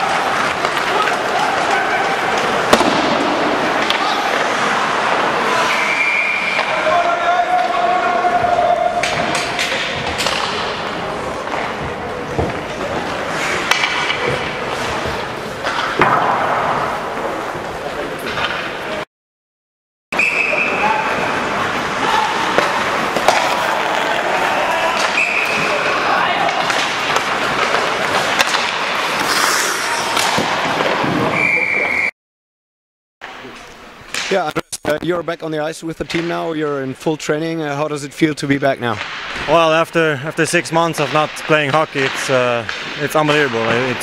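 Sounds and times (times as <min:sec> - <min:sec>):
hockey sticks and pucks clacking: 0:00.0 - 0:19.0, 0:21.5 - 0:31.7, 0:33.5 - 0:35.0, 0:36.0 - 0:36.5, 0:38.6 - 0:39.8, 0:40.5 - 0:44.0
skate blades scraping on ice: 0:26.7 - 0:31.3.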